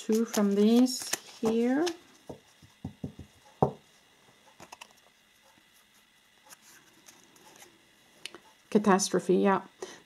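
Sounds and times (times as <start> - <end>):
cards clicking: 0.0 - 2.0
cards ticking as moved: 0.0 - 3.6, 4.4 - 8.6.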